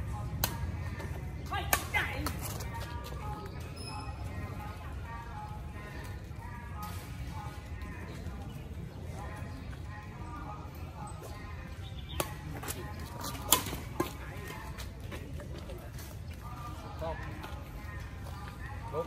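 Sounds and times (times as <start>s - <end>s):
rackets hitting shuttlecock: 1.7s - 2.6s, 12.2s - 14.2s.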